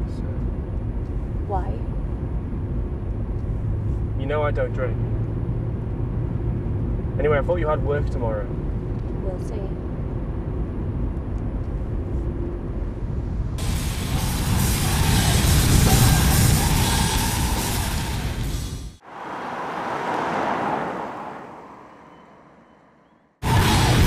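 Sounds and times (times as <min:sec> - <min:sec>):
low cabin road rumble: 0:00.0 - 0:24.0
car passing on wet road: 0:19.0 - 0:22.6.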